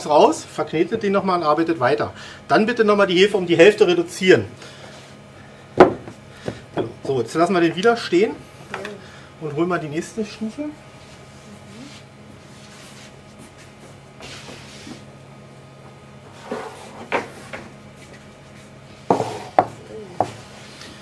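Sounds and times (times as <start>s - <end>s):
steady low hum: 0.0s - 21.0s
sharp knocks: 5.8s - 6.9s.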